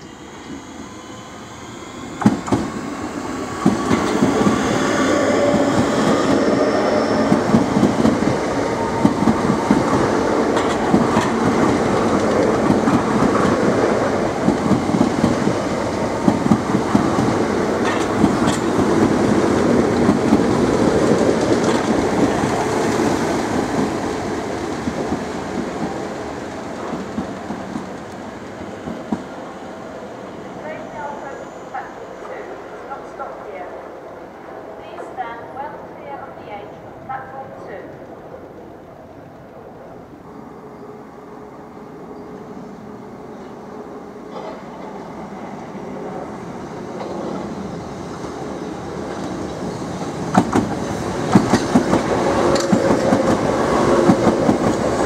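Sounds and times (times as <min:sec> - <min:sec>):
electric train passing: 0:00.0 - 0:55.0.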